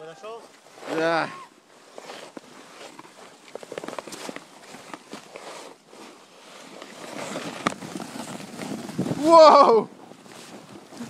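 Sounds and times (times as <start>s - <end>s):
footsteps on trail: 0.4s - 9.4s
clothing rustle: 0.6s - 11.0s.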